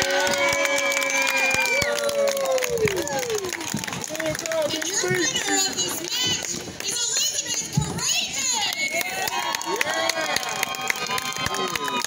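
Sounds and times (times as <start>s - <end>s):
crowd cheering and clapping: 0.0s - 12.0s.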